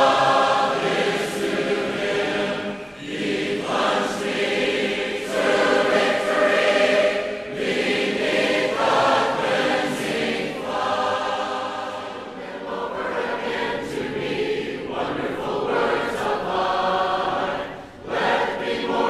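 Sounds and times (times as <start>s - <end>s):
congregation singing a hymn: 0.0s - 19.0s.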